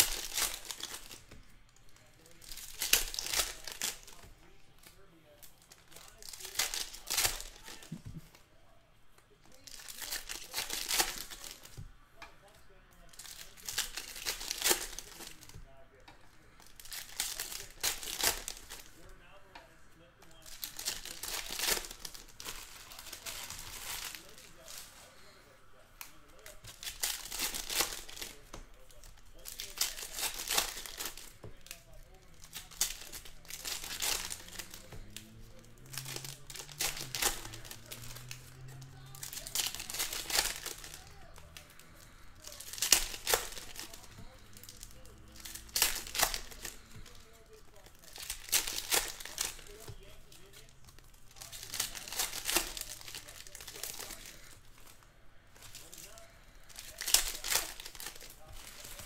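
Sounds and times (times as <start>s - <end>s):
foil wrappers tearing and crinkling: 0.0s - 8.4s, 9.4s - 59.0s.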